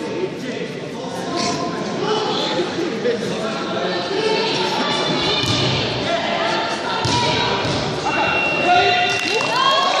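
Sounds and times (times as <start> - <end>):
people talking in echoing hall: 0.0 - 10.0.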